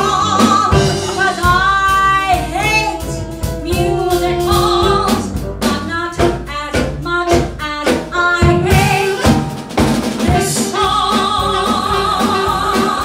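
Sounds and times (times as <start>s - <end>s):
woman singing into microphone: 0.0s - 9.4s, 10.2s - 13.0s
drum kit: 0.0s - 13.0s
piano: 0.0s - 13.0s
upright bass: 0.0s - 13.0s.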